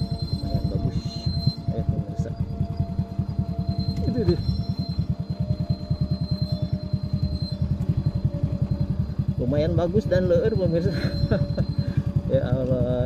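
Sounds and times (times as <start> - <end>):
motorcycle engine running: 0.0 - 13.0.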